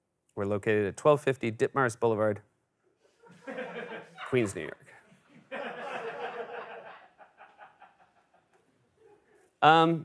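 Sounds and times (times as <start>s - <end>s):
laughter: 3.2s - 8.7s.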